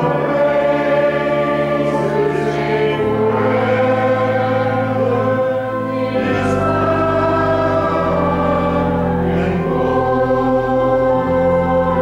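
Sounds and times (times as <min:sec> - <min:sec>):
choir singing a slow hymn: 0:00.0 - 0:12.0.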